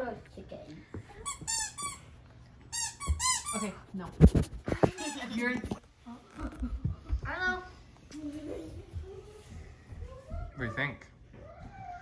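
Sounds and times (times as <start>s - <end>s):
squeaky toy squeaks: 1.2s - 2.0s, 2.7s - 3.8s.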